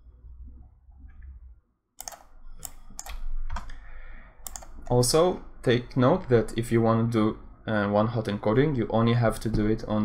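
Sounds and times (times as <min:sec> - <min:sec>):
computer keyboard keystrokes: 0:02.0 - 0:03.7, 0:04.4 - 0:05.0.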